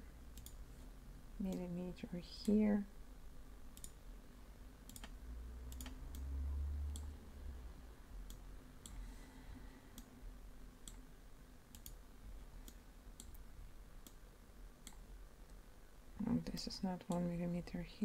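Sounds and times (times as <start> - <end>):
computer mouse clicking: 0.3 - 0.6, 3.7 - 4.0, 4.9 - 7.2, 8.2 - 9.0, 10.8 - 11.0, 11.7 - 12.0, 12.6 - 14.2, 14.8 - 15.6.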